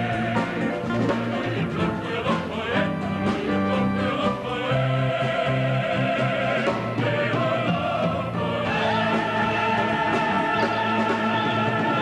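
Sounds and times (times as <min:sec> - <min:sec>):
choir singing sustained chords: 0:00.0 - 0:12.0
instrumental accompaniment: 0:00.0 - 0:12.0.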